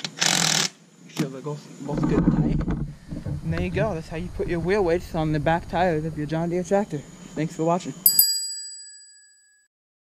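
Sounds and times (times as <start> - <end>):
bell ding ringing: 8.0 - 9.7.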